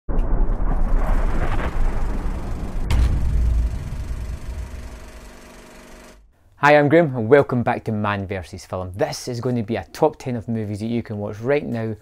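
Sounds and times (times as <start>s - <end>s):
deep rumbling build: 0.1s - 5.6s
sharp booming hit: 0.1s - 6.3s.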